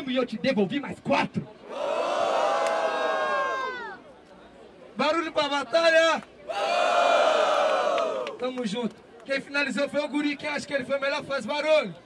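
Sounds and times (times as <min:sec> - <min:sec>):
low crowd murmur: 0:01.3 - 0:11.0
crowd shouting ohh: 0:06.5 - 0:08.4.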